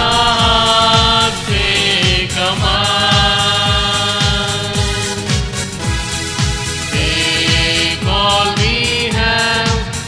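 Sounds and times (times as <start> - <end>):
hymn singing with music: 0.0 - 10.0
low drum beat: 0.0 - 10.0.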